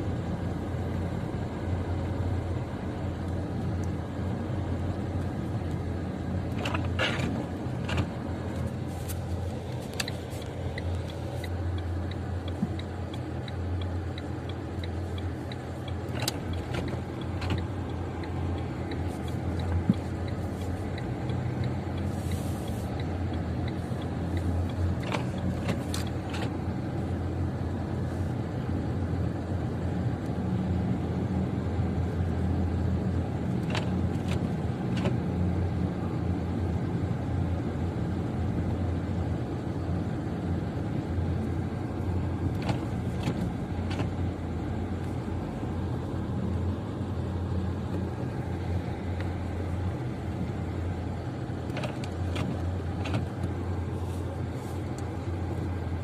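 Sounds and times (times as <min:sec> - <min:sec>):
car engine and tyre rumble: 0:00.0 - 0:56.0.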